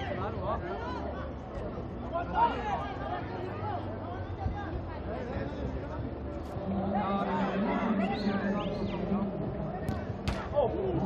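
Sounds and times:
crowd chatter: 0.0 - 11.0
football kicks: 9.8 - 10.5.

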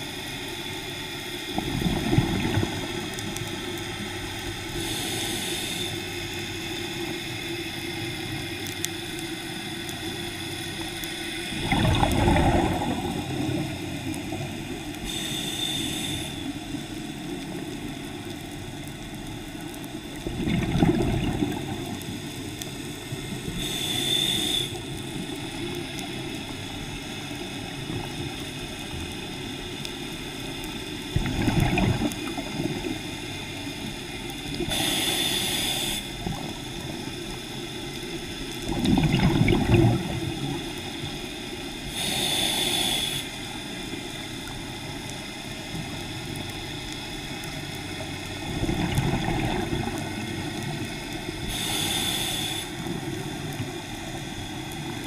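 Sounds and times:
exhaled bubbles rumbling: 1.5 - 4.3, 11.5 - 15.0, 20.0 - 22.4, 31.1 - 33.2, 38.6 - 41.1, 47.8 - 51.6
hissing regulator inhalation: 4.8 - 6.0, 15.0 - 16.6, 23.5 - 24.8, 34.6 - 36.2, 41.9 - 43.4, 51.4 - 53.0.

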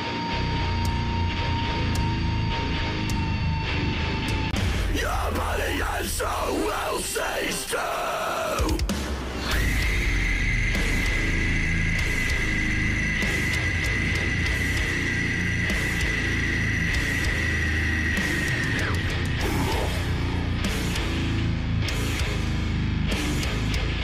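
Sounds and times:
rock band playing: 0.0 - 24.0.

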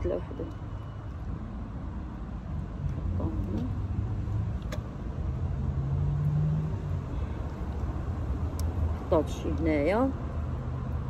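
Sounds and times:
motor vehicle rumble passing: 2.4 - 11.0.

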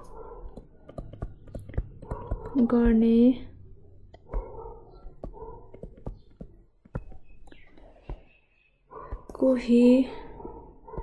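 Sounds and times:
stylus tapping on tablet screen: 0.0 - 3.3, 4.0 - 10.2.

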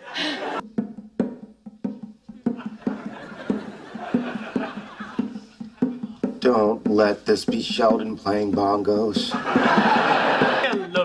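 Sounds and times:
bongo drums: 0.1 - 11.0.

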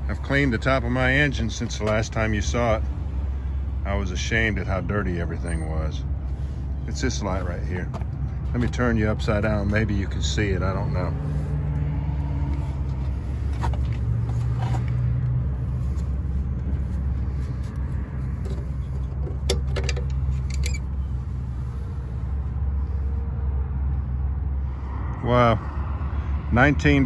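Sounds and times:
vehicle engine idling: 0.0 - 27.0.

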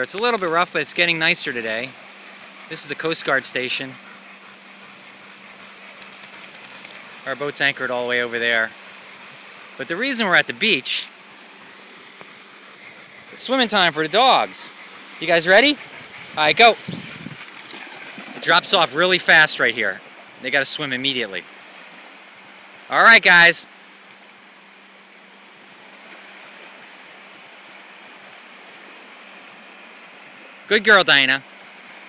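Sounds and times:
small waves lapping on shore: 0.0 - 3.9, 4.6 - 32.0.

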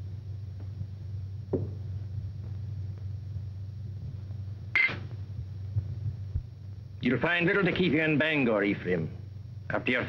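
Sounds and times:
low film soundtrack hum: 0.0 - 10.0.

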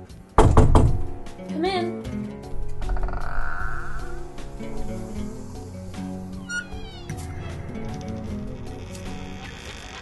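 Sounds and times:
background music: 0.0 - 10.0
loud thud: 0.4 - 1.1.

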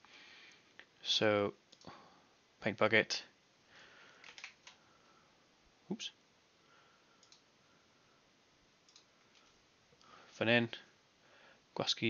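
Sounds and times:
faint computer mouse clicks: 7.2 - 7.5, 8.9 - 9.6.

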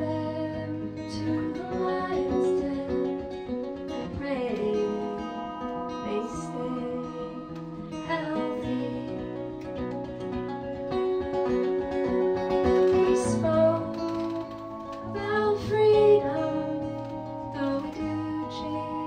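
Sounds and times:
woman singing: 0.0 - 10.0, 12.9 - 19.0
acoustic guitar: 0.0 - 19.0
sustained electronic keyboard tones: 1.1 - 19.0.

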